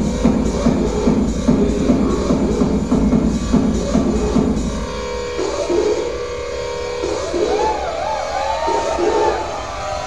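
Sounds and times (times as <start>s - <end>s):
low bass: 0.0s - 10.0s
sustained synthesizer tones: 0.0s - 10.0s
warbling synth line: 0.0s - 10.0s.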